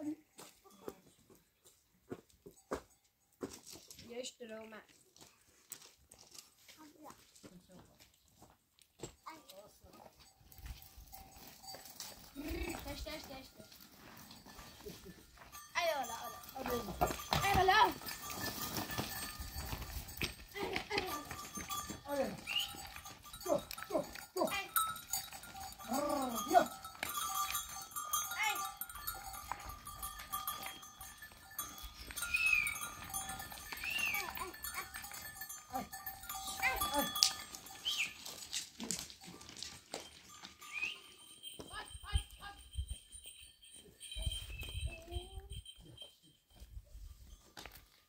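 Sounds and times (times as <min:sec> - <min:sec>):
goats and sheep bleating: 0:11.6 - 0:13.2, 0:14.4 - 0:41.2.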